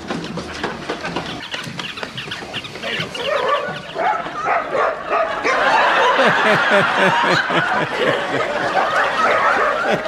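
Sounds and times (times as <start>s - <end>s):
puppies yelping and squeaking: 1.3s - 4.6s.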